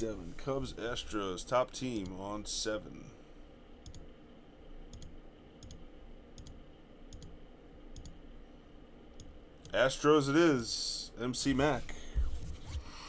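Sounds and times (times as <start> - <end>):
computer mouse clicking: 3.8 - 4.1, 4.9 - 5.8, 6.4 - 8.2.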